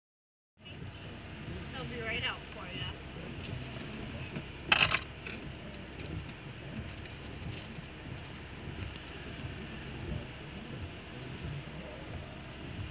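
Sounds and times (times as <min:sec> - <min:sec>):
car cabin rumble: 0:00.6 - 0:12.9.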